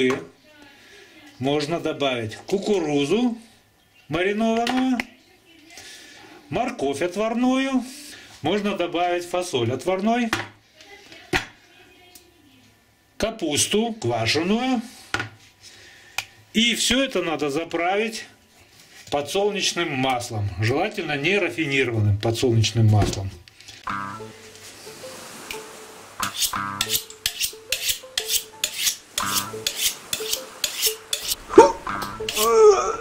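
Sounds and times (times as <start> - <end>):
knife scraping on honing steel: 26.2 - 32.6.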